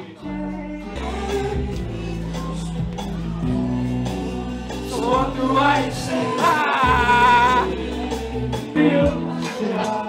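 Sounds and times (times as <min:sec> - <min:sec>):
bass: 0:00.0 - 0:10.0
person singing: 0:00.0 - 0:10.0
live band playing: 0:01.0 - 0:09.8.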